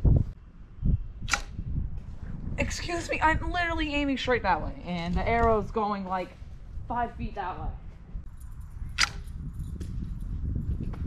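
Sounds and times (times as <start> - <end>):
wind rumble on microphone: 0.0 - 11.0
bowstring snapping: 1.3 - 1.6, 9.0 - 9.3.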